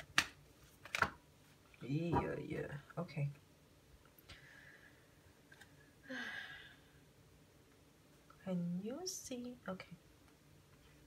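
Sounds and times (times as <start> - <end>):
cards being shuffled: 0.0 - 1.2.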